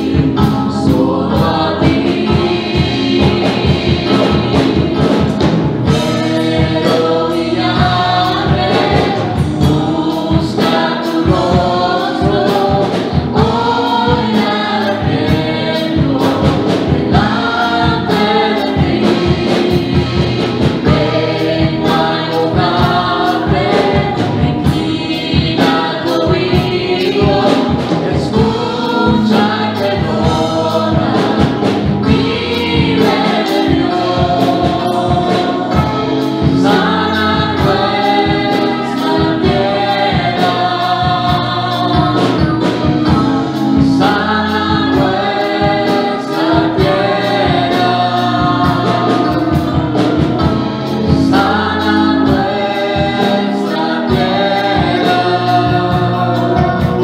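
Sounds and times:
instrumental accompaniment with beat: 0.0 - 57.0
women singing into microphones: 5.9 - 57.0.

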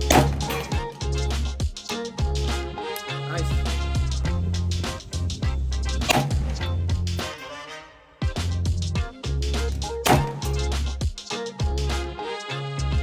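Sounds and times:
sharp bangs: 0.0 - 0.9, 5.9 - 7.4, 10.0 - 10.6
upbeat music with bass beat: 0.0 - 13.0.

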